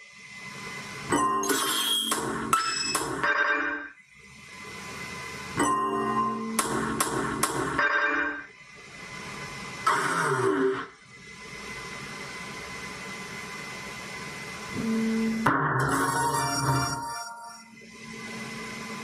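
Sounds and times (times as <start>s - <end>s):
electronic slot machine jingles: 15.8s - 17.6s.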